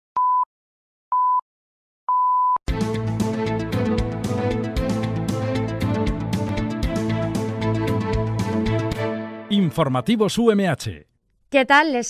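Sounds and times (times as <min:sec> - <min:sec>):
time signal beep: 0:02.1 - 0:02.6
news theme music: 0:02.7 - 0:10.9.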